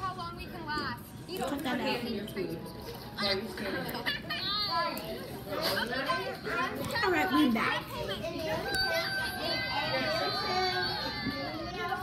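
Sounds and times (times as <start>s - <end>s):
children talking and shouting: 0.0s - 12.0s
children laughing: 3.0s - 6.5s.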